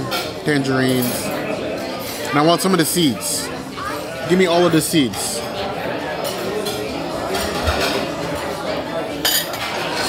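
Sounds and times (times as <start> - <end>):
cutlery clinking on a dish: 0.0 - 1.4, 6.2 - 10.0
murmur of diners: 0.0 - 10.0.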